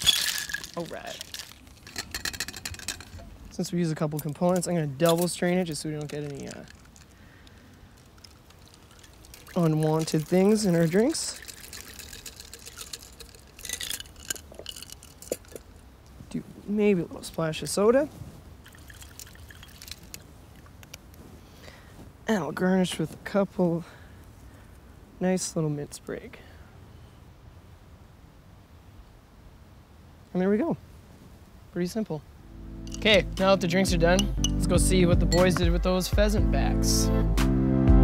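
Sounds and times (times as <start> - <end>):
soda water pouring into glass: 0.0 - 1.9, 8.5 - 14.9
cocktail shaker ice clicking: 0.0 - 15.8, 18.6 - 21.0, 32.9 - 35.6
fizzing ticks and crackles: 0.0 - 16.2, 18.6 - 21.0.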